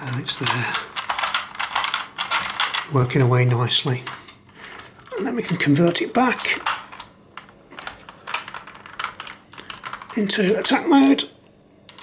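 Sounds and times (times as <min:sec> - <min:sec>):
hard plastic toy parts clicking: 0:00.1 - 0:02.9, 0:04.1 - 0:10.8.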